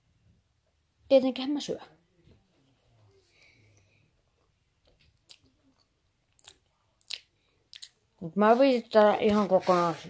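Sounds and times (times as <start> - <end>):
faint chewing: 4.4 - 8.0
mouth clicks: 6.3 - 8.0.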